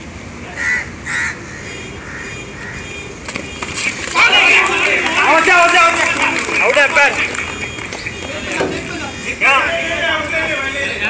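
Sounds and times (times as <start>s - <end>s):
crow cawing: 0.6s - 2.9s.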